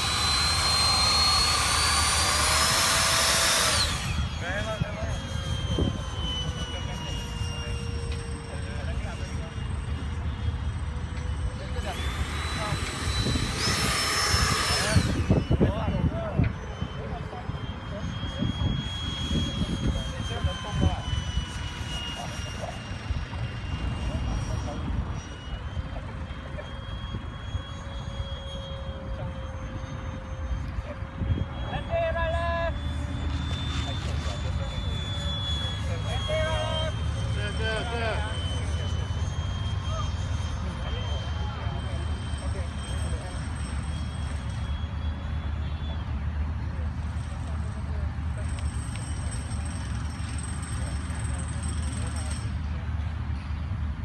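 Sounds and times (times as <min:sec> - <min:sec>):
model jet ducted-fan whine: 0:00.0 - 0:54.0
wind rumbling on microphone: 0:12.0 - 0:21.6.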